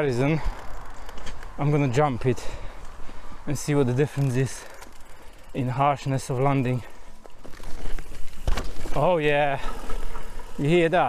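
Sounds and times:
bike tyres rushing over dirt: 0.0s - 11.0s
bike landing thud: 8.1s - 9.1s.

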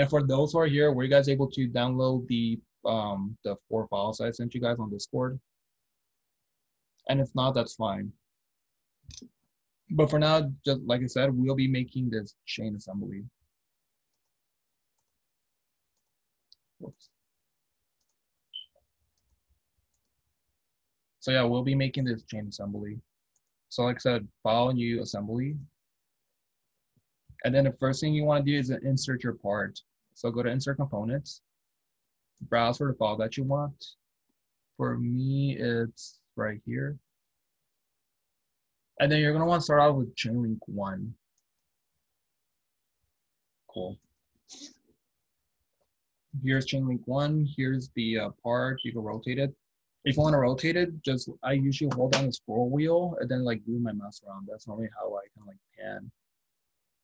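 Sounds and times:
man speaking: 0.0s - 5.4s, 7.0s - 8.2s, 9.9s - 13.4s, 23.7s - 25.7s, 27.4s - 31.4s, 32.4s - 34.0s, 34.8s - 37.0s, 39.0s - 41.2s, 43.7s - 44.0s, 46.3s - 56.2s.

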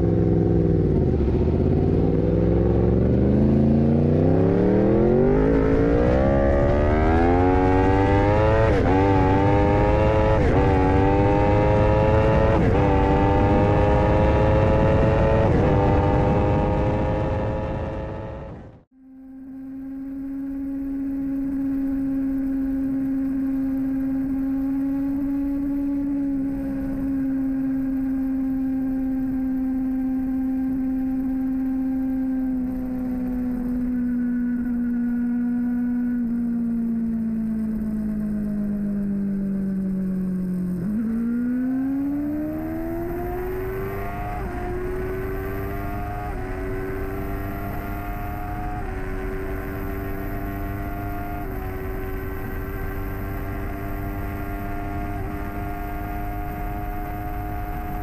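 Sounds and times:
motorcycle engine accelerating: 0.0s - 58.0s.

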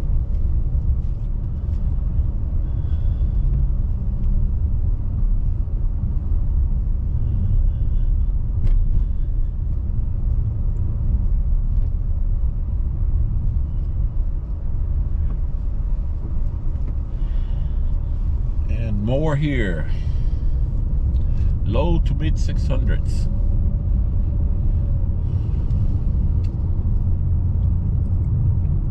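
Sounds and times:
car road and engine rumble: 0.0s - 28.9s.

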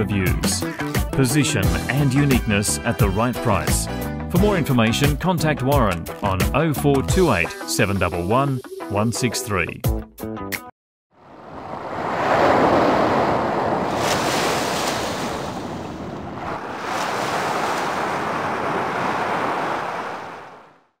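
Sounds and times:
surf washing up a beach: 11.3s - 20.9s.

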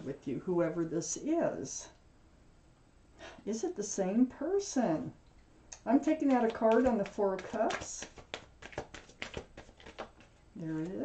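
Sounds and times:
cards being shuffled: 6.1s - 11.0s.

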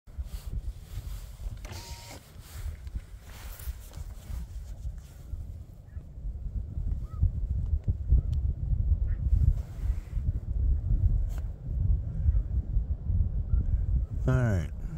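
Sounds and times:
wind buffeting microphone: 0.1s - 14.9s.

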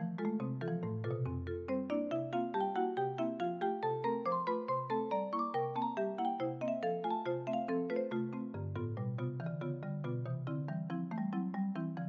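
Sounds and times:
marimba playing softly: 0.0s - 12.0s.

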